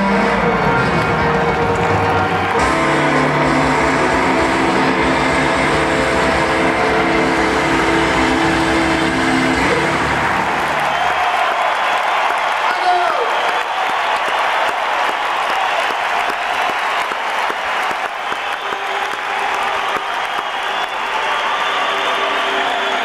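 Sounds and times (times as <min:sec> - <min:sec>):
live band playing blues: 0:00.0 - 0:10.6
crowd applause: 0:00.0 - 0:23.0.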